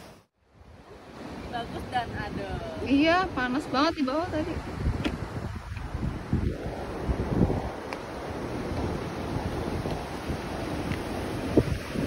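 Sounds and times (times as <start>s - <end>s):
wind buffeting microphone: 0.5s - 12.0s
sea surf breaking on rocks: 0.9s - 12.0s.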